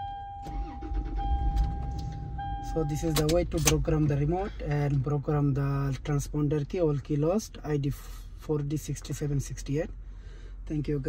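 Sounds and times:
steady electronic warning tone: 0:00.0 - 0:03.2
car engine cranking and starting: 0:00.0 - 0:07.8.

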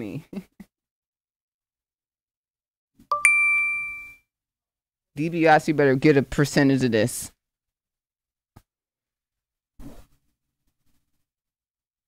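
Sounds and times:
electronic two-note chime: 0:03.1 - 0:04.2.

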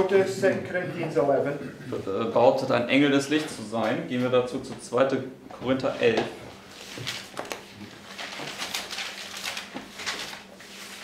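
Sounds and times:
pages rustling and flicking: 0:06.7 - 0:11.0.

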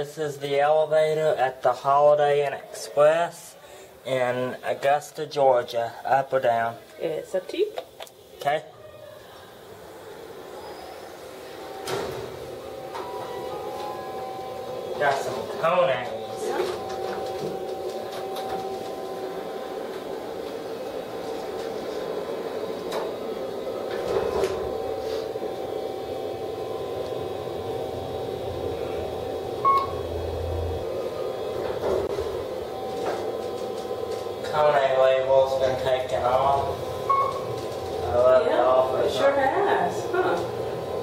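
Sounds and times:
elevator hum: 0:08.2 - 0:41.0
short electronic beep: 0:29.6 - 0:30.0, 0:37.1 - 0:37.4.

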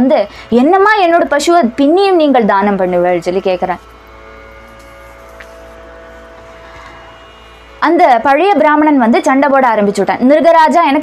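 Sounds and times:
musical drone of held tones: 0:00.0 - 0:11.0.

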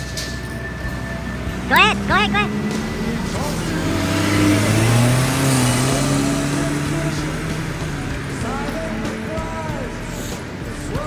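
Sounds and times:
car accelerating: 0:00.0 - 0:11.0
road traffic noise: 0:00.0 - 0:11.0.

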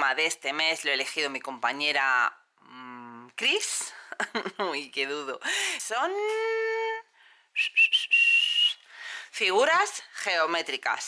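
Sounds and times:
whistle blasts: 0:07.6 - 0:08.8.

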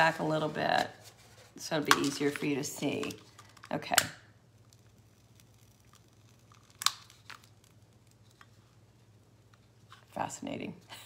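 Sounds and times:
paper crinkling and crackling: 0:04.6 - 0:08.8.

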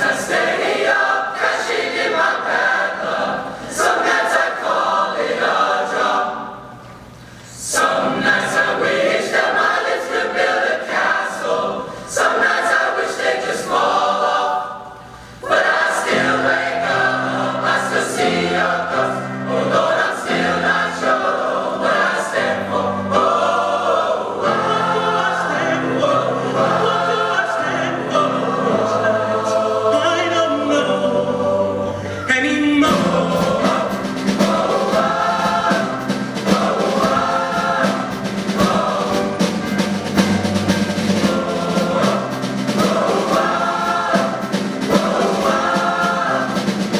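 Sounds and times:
choir singing in harmony: 0:00.0 - 0:46.9.

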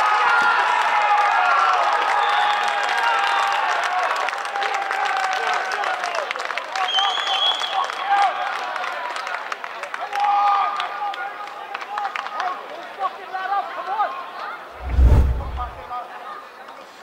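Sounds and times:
low boom: 0:14.8 - 0:15.8.

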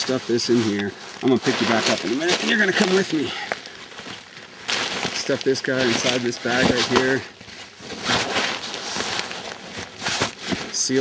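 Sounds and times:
nylon sack rustling: 0:00.0 - 0:11.0.

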